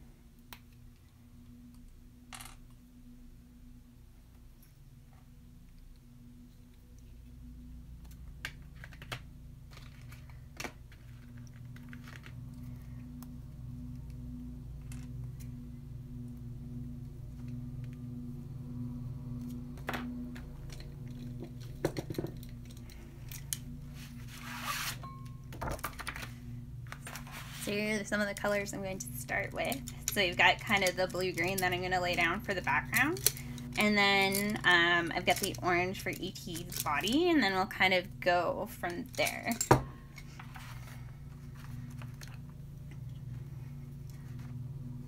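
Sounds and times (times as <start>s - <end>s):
faint background music: 0.0s - 42.4s
paper rustling and sliding: 23.9s - 25.0s, 25.6s - 27.8s, 40.3s - 42.2s.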